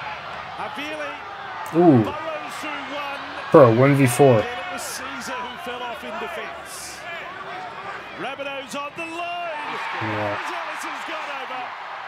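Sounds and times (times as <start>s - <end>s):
stadium crowd: 0.0s - 12.0s
television match commentary: 0.5s - 12.0s.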